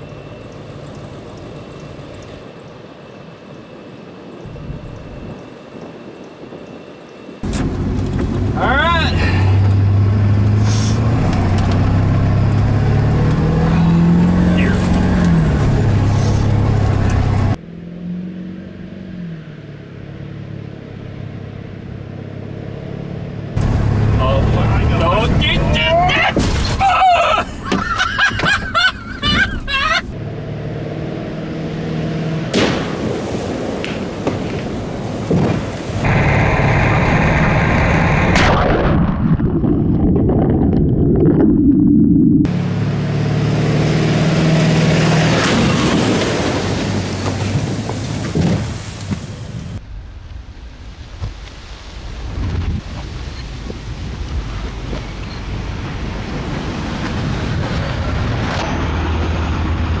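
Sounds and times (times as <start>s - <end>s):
diesel truck engine accelerating: 7.4s - 26.4s, 27.5s - 33.9s, 34.8s - 49.8s, 54.5s - 60.0s.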